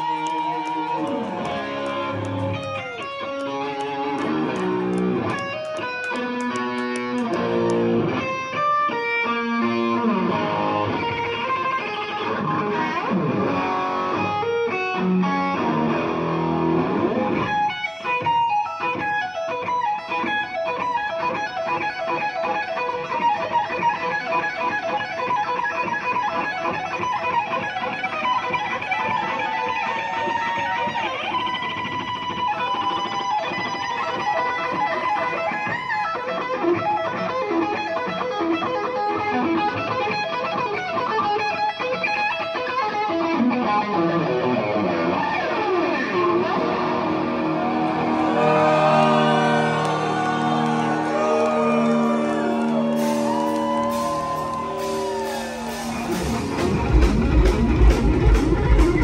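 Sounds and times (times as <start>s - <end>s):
electric guitar solo: 0.0s - 58.9s.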